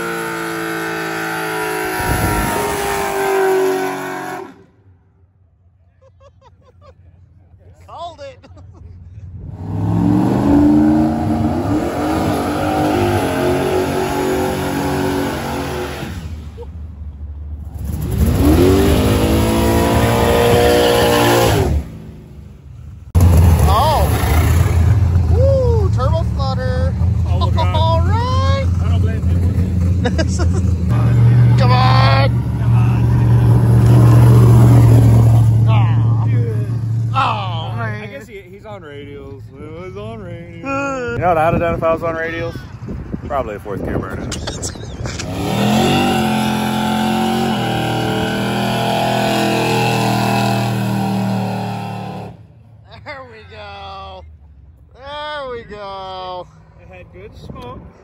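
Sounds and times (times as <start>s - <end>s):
car engines revving hard: 0.0s - 4.8s, 9.2s - 16.6s, 17.6s - 22.4s, 23.1s - 25.4s, 26.0s - 38.1s, 43.8s - 52.6s.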